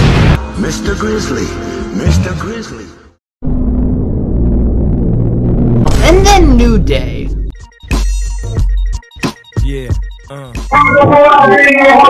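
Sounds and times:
distorted low rumble with drone: 3.4 - 7.6.

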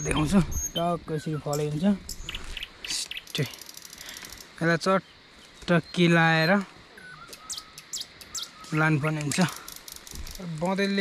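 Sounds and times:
small bird chirping: 0.0 - 11.0.

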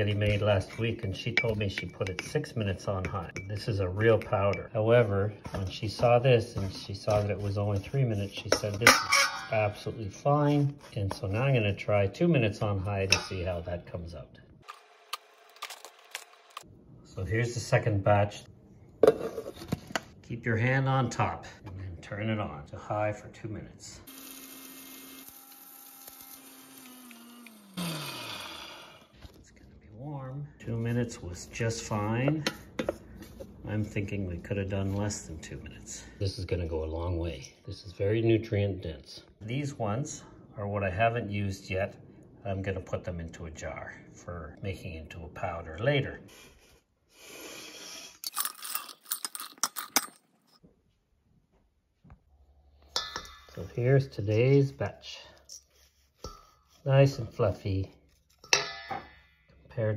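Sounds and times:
mixer grinder motor running: 24.1 - 29.0.

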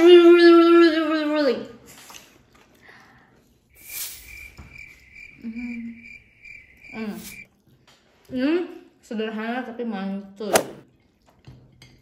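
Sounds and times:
cricket chirping: 3.7 - 7.5.

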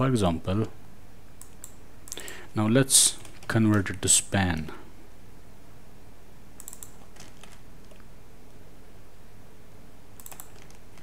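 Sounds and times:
low steady hum: 0.0 - 11.0
keyboard keystrokes: 6.6 - 8.0, 10.2 - 11.0.

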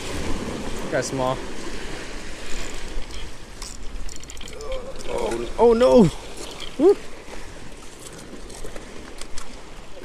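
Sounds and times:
surf washing against rocks: 0.0 - 10.0
wind buffeting microphone: 0.0 - 10.0
fishing reel clicking: 2.6 - 5.4, 6.3 - 6.8.

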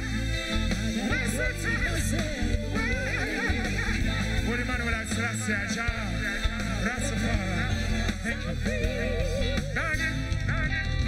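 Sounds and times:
heavy bass line: 0.0 - 11.0
live reggae band music: 0.0 - 11.0
lead and backing vocals singing: 6.2 - 10.2.

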